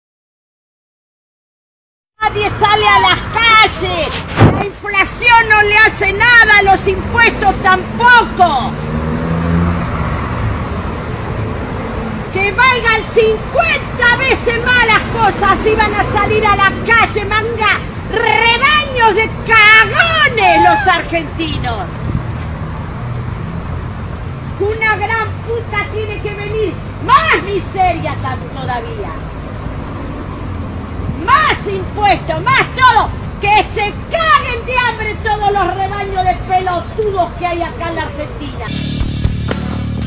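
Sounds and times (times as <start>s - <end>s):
road noise: 2.2s - 40.0s.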